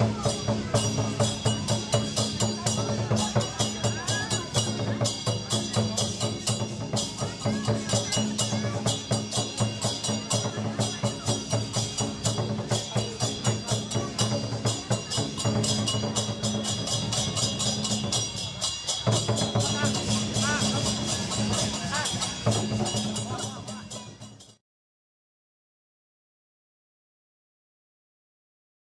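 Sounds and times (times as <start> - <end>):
cymbals ringing: 0.0 - 24.6
drum beating rapidly: 0.0 - 24.6.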